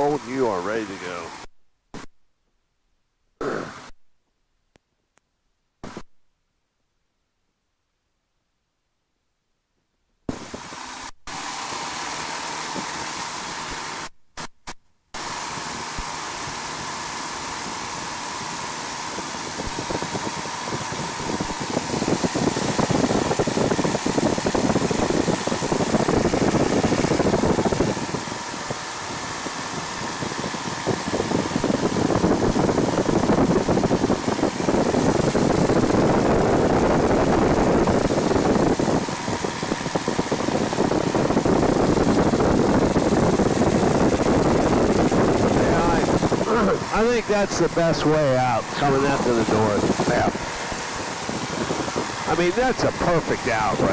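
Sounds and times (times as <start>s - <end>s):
small plane engine and propeller: 0.0s - 2.1s, 10.3s - 14.5s, 15.2s - 53.9s
wind noise: 10.3s - 14.1s, 15.2s - 53.9s.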